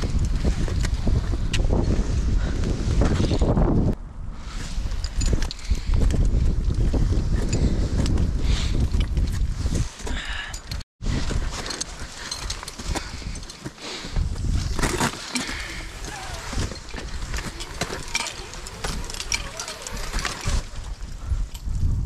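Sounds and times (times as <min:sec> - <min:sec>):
wind rumbling on microphone: 0:00.0 - 0:22.0
climbing gear scraping ice: 0:11.1 - 0:21.5.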